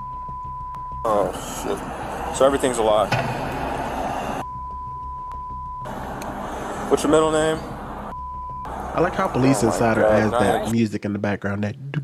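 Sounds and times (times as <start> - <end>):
censor bleep: 0.0 - 1.6, 4.4 - 5.9, 8.1 - 8.7.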